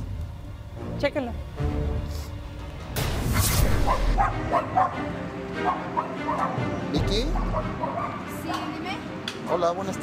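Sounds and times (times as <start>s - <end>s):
music: 0.0s - 10.0s
dog barking: 3.8s - 8.5s.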